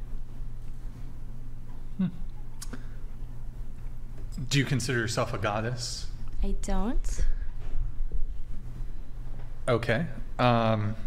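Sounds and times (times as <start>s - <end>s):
steady low hum: 0.0s - 11.0s
person saying hmm: 1.9s - 2.8s.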